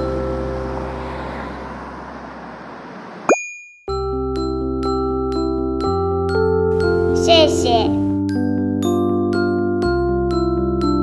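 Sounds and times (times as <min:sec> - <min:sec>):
street traffic rushing: 0:00.0 - 0:03.4, 0:06.7 - 0:08.2
background music: 0:04.0 - 0:11.0.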